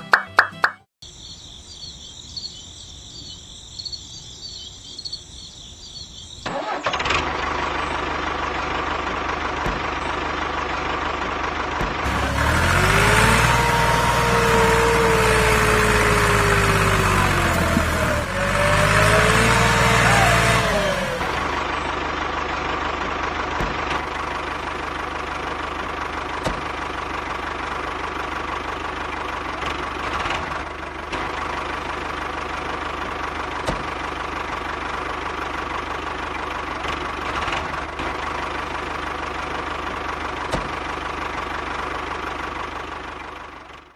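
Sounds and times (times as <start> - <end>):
small motor whining: 12.0 - 21.6.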